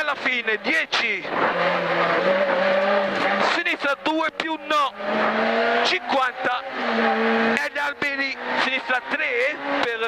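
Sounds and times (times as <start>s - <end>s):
car engine at high revs: 0.0s - 10.0s
road and tyre noise: 0.0s - 10.0s.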